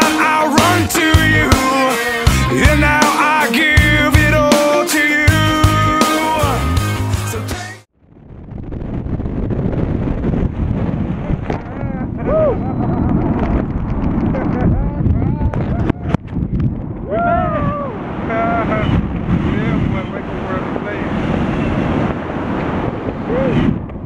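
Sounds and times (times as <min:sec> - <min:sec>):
wind buffeting microphone: 0:08.0 - 0:24.0.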